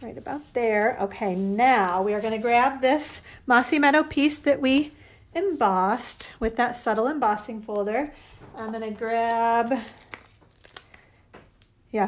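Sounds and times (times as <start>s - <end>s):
paper rustles and crinkles: 8.3s - 11.7s.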